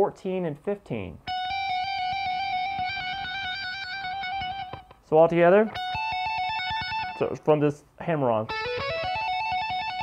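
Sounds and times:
electric guitar trill: 1.3 - 5.0, 5.7 - 7.4, 8.5 - 10.0.

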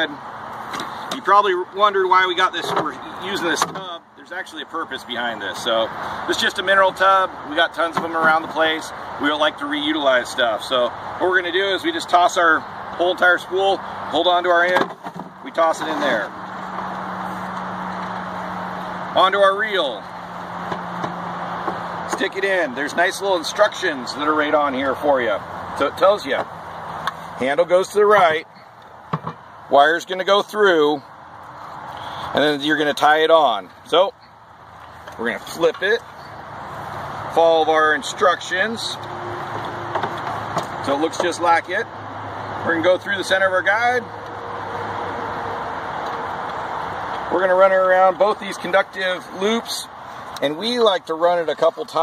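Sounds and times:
constant low hum: 0.0 - 52.0
steady background noise: 0.0 - 52.0
vehicle engine rumble: 0.0 - 52.0.

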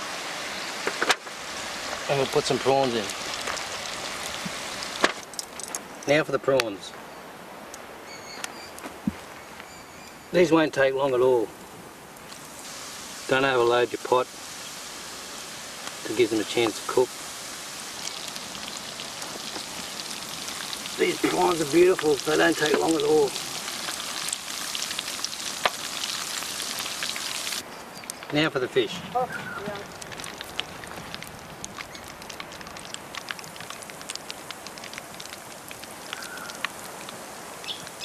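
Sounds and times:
deep-frying in hot oil: 0.0 - 6.1, 12.2 - 38.0
outdoor background hiss: 0.0 - 38.0
high bird chirps: 8.0 - 8.8, 37.6 - 38.0
faint clicks: 30.0 - 37.2.

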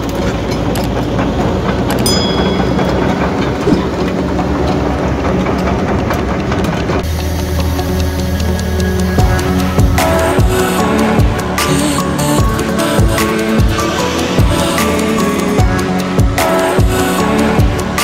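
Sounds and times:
excavator tracks clanking: 0.0 - 7.4.

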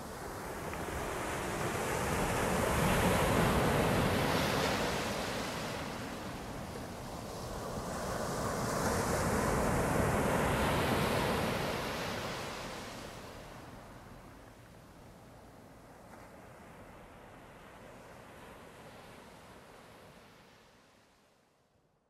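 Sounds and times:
ocean waves washing in: 0.0 - 14.4.

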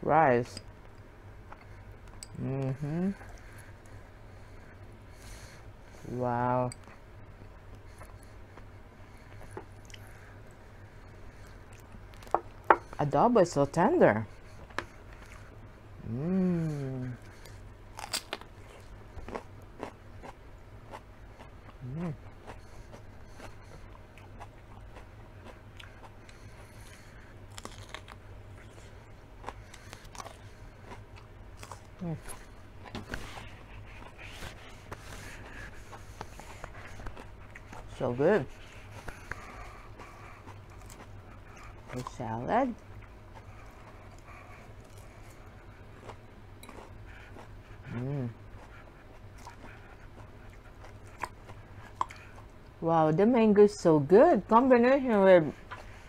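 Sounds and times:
low steady hum: 0.0 - 56.0
chewing crunches: 17.2 - 42.2, 42.8 - 52.8.

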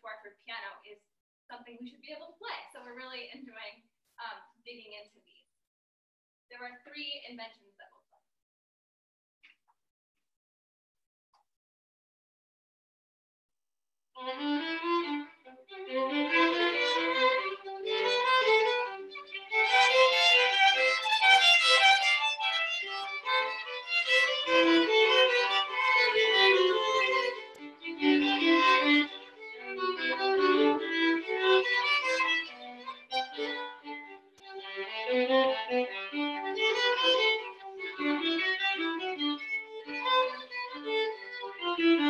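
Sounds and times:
two violins playing a duet: 14.2 - 42.0.

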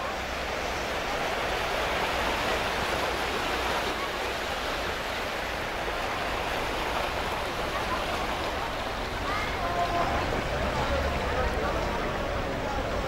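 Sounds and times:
car tyres sloshing through water: 0.0 - 13.0
rushing water: 0.0 - 13.0.

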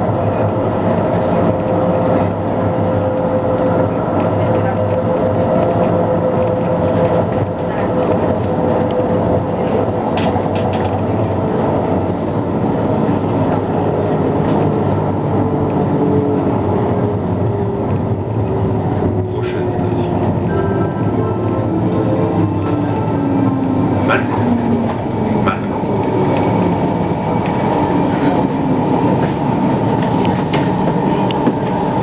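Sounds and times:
tram wheels rumbling on rails: 0.0 - 32.0.

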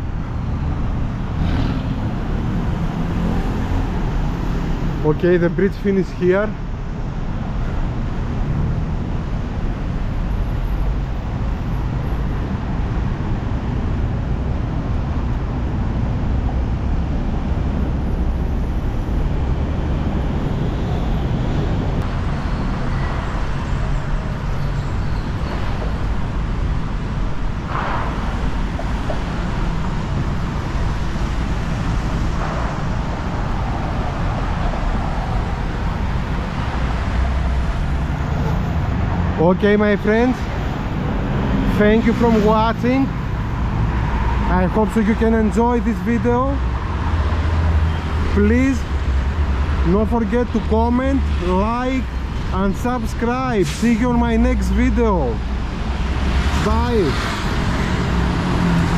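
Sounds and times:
road traffic rumble: 0.0 - 58.9
vehicles passing: 0.0 - 58.9.

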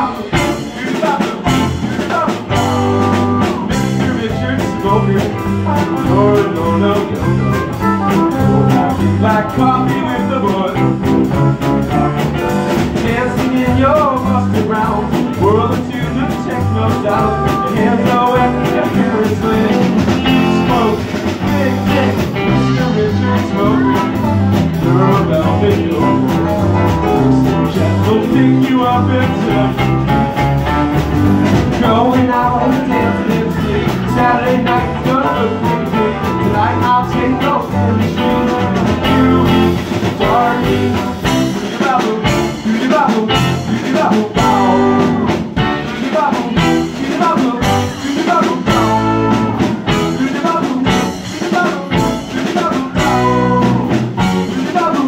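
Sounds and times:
bass guitar: 0.0 - 55.0
drum kit: 0.0 - 55.0
electric guitar: 0.0 - 55.0.

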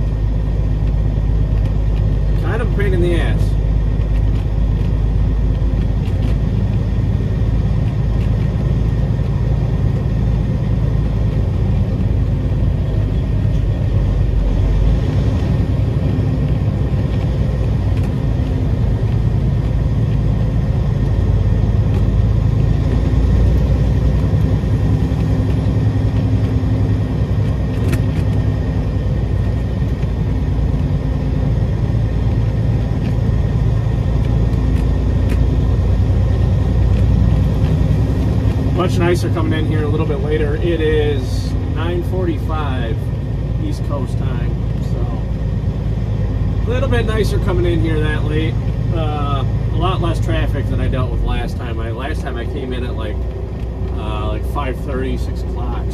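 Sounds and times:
truck diesel engine rumbling: 0.0 - 55.9.

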